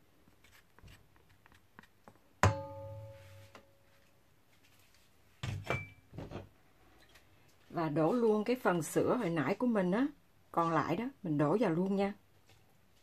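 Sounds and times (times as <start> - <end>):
metal bowl ringing: 2.4 - 3.8.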